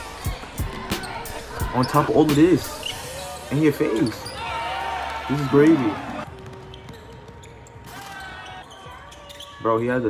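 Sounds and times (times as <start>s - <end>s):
knocks and squeaks on court: 0.7s - 4.7s, 5.3s - 10.0s.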